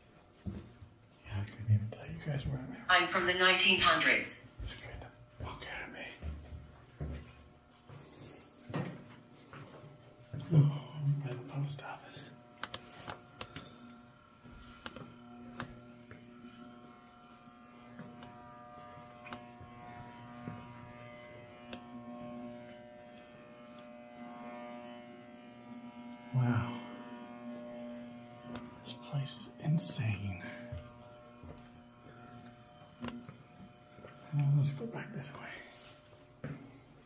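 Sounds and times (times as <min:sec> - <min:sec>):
droning hum: 0:00.0 - 0:37.0.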